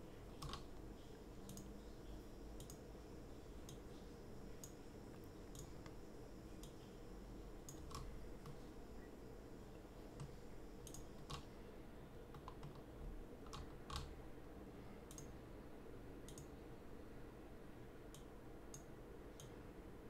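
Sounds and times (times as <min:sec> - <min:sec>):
low steady hum: 0:00.0 - 0:20.0
computer mouse clicks: 0:00.4 - 0:00.8, 0:01.4 - 0:01.7, 0:02.6 - 0:02.8, 0:03.6 - 0:03.9, 0:04.6 - 0:06.0, 0:06.6 - 0:06.8, 0:07.6 - 0:08.6, 0:10.2 - 0:11.5, 0:12.3 - 0:14.1, 0:15.1 - 0:15.3, 0:16.3 - 0:16.5, 0:18.1 - 0:19.6.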